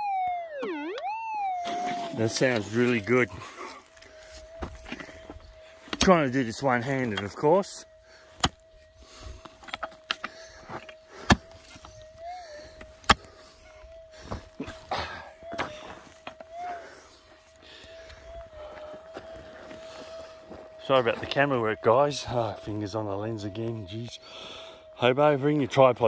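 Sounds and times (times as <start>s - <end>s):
metal detector tone: 0.2s - 24.2s
loose dirt scraping: 1.6s - 17.8s.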